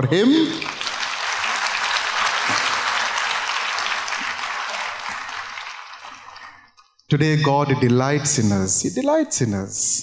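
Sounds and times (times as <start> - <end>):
audience applause: 0.4 - 6.7.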